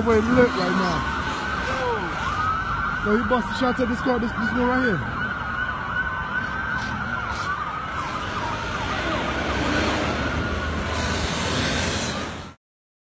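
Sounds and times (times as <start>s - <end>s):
police sirens wailing: 0.0s - 12.6s
traffic rumble: 0.0s - 12.6s.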